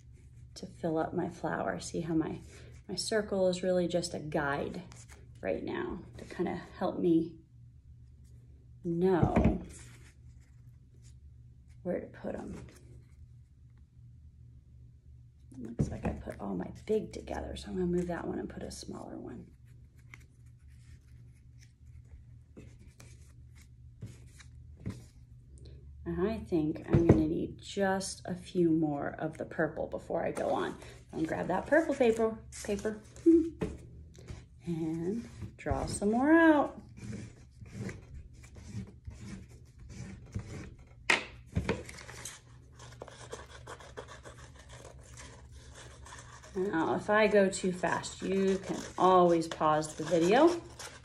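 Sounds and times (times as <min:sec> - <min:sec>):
steady low hum: 0:00.0 - 0:51.0
pencil scratching on paper: 0:43.0 - 0:46.9, 0:48.0 - 0:51.0
scissors cutting paper: 0:48.1 - 0:51.0.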